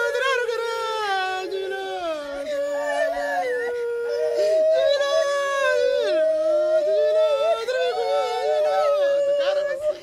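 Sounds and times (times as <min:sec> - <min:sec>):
voices wailing: 0:00.0 - 0:10.0.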